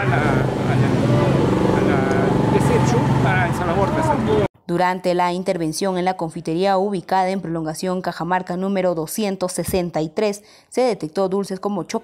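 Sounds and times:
man talking: 0.0s - 4.5s
road traffic: 0.0s - 4.5s.

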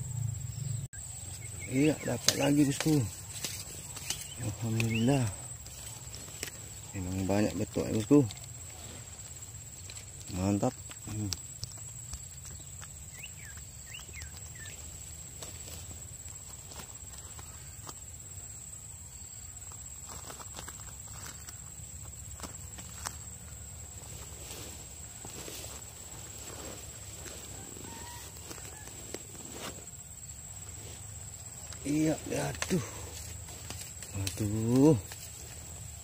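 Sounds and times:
small clicks and rustles: 2.2s - 18.0s, 32.5s - 36.0s.

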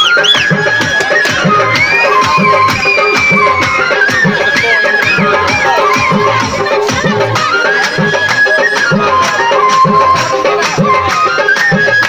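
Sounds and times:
steady drum beat: 0.0s - 11.1s.

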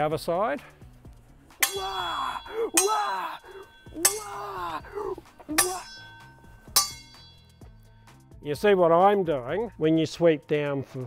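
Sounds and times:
metal swords clanging: 1.6s - 7.8s.

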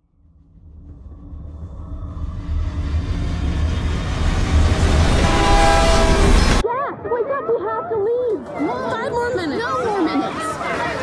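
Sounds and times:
train rumble: 0.0s - 6.6s
train horn chord: 4.2s - 6.6s.

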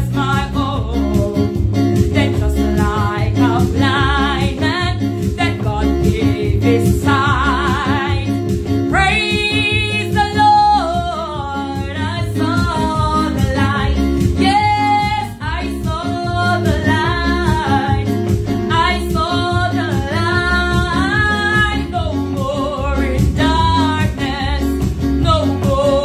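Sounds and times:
electronic keyboard with bass: 0.0s - 26.0s
woman singing gospel song: 0.0s - 26.0s.

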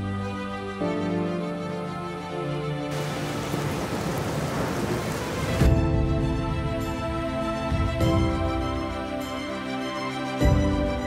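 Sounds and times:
soft background music: 0.0s - 11.0s
heavy rain pouring: 2.9s - 5.9s.

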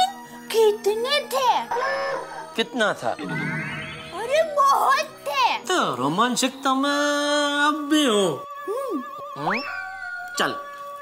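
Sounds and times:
sustained tone music: 1.6s - 11.0s.

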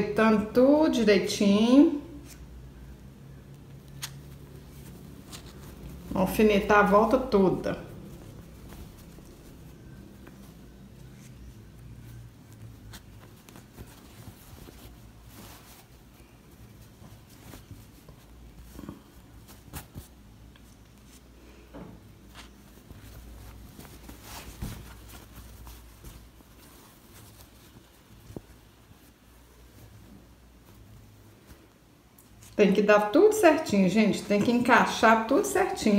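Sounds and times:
fabric rustling: 0.0s - 35.9s
low steady hum: 0.0s - 35.9s.

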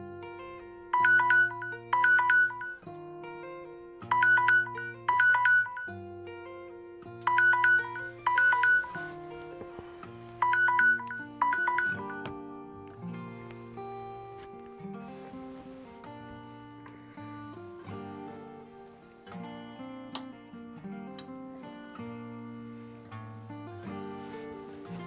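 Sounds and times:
soft background music: 0.0s - 25.0s
smartphone alarm chimes: 1.0s - 2.8s, 4.1s - 6.0s, 7.3s - 9.1s, 10.4s - 12.3s.

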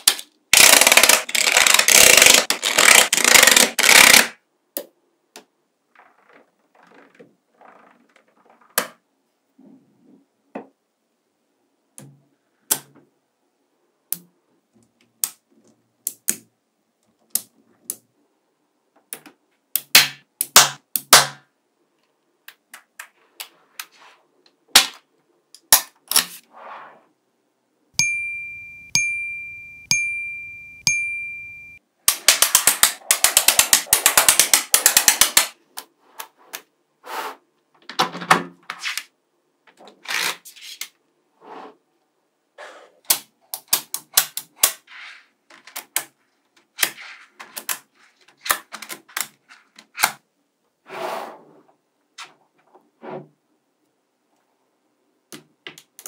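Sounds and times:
magnetic balls clicking together: 0.0s - 4.2s, 32.1s - 35.6s
ringing dings: 28.0s - 31.8s.

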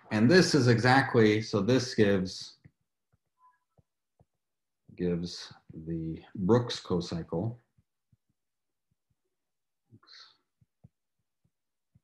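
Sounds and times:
faint breath: 10.0s - 10.5s
stylus tapping on tablet screen: 10.6s - 12.0s.

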